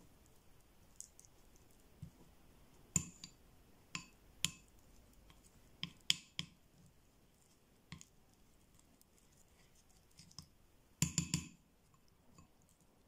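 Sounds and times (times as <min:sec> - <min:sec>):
plastic spoon clinking ceramic bowl: 0:11.0 - 0:11.6.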